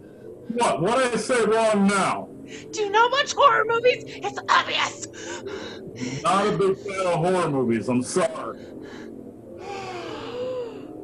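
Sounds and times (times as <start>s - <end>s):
person gasping: 5.2s - 6.7s.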